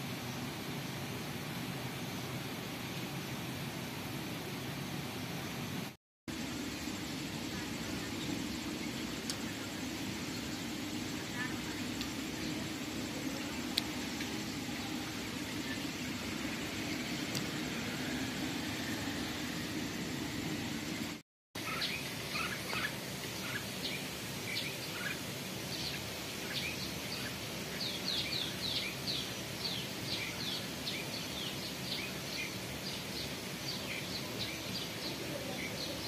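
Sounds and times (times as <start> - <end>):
birds chirping: 7.5 - 36.0.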